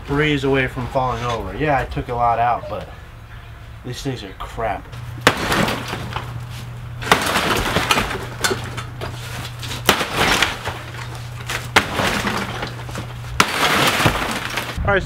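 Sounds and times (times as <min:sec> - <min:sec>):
steady low hum: 0:00.0 - 0:15.0
wood paneling cracking and splintering: 0:05.2 - 0:06.4, 0:07.0 - 0:14.8.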